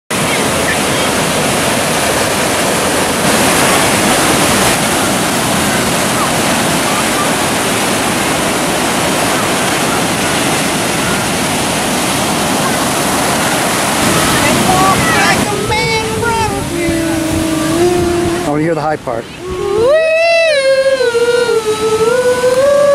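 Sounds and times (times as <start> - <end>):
ocean surf breaking: 0.1 - 22.9.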